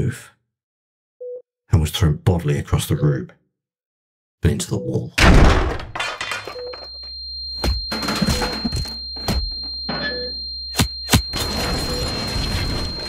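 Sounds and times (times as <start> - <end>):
high-pitched ringing tone: 6.4 - 13.0.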